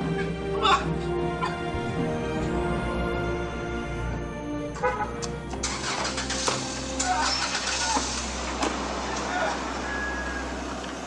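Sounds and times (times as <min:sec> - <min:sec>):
car engine idling: 0:05.1 - 0:11.0.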